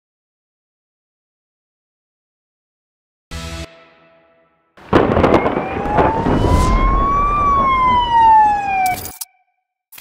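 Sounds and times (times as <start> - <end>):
sudden crash: 4.8 - 8.2
siren-like wailing tone: 4.9 - 9.7.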